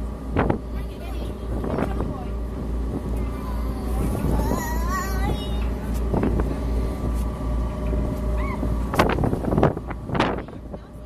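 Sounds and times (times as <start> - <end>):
ferry engine running: 0.0 - 11.0
wind buffeting microphone: 0.0 - 11.0.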